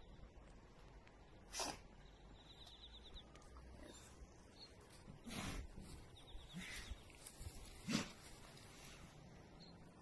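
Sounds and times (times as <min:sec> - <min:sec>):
dog sneezing: 0:01.5 - 0:01.8.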